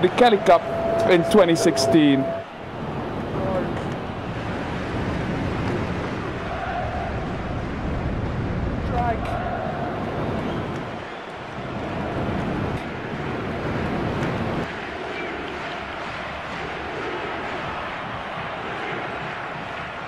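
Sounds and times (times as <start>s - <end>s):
steady rushing outdoor noise: 0.0s - 20.0s
deep rumble: 0.2s - 10.8s.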